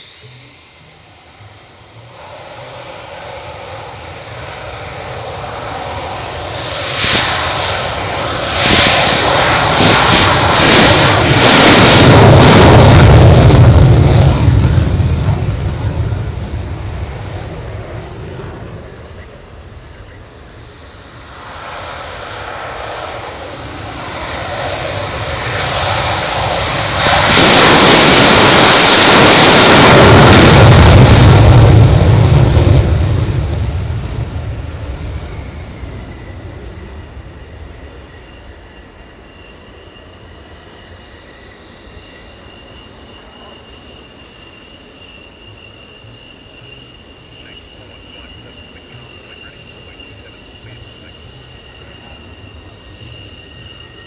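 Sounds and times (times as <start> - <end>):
jet taking off on afterburner: 0.0 - 54.0
afterburner crackle: 5.4 - 19.2, 21.0 - 36.1.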